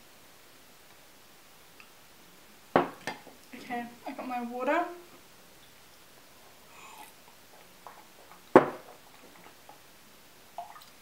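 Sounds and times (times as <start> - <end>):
hard object knocking on desk: 2.8 - 3.0.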